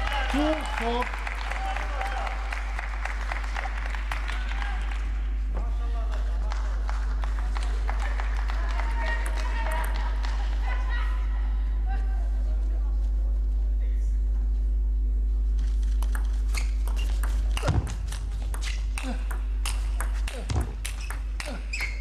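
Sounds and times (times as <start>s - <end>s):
spectators clapping: 0.0s - 10.9s
low electrical hum: 0.0s - 22.0s.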